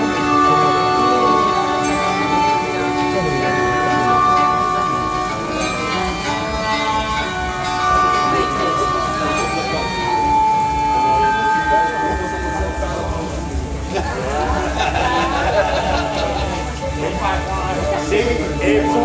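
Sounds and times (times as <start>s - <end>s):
people's voices: 0.0s - 19.0s.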